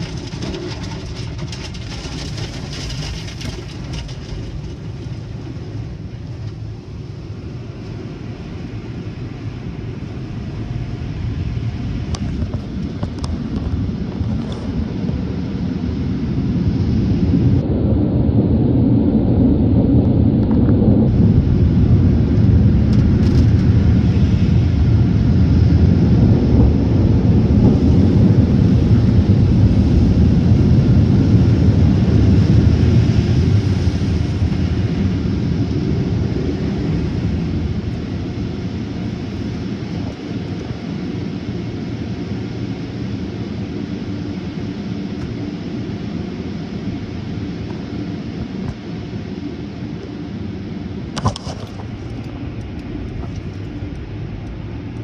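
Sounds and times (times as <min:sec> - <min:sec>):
car wash brushes and water spray: 0:00.0 - 0:05.3.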